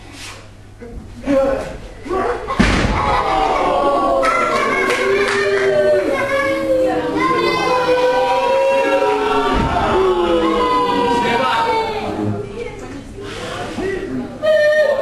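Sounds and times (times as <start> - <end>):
crowd shouting and chanting: 2.9 - 12.3.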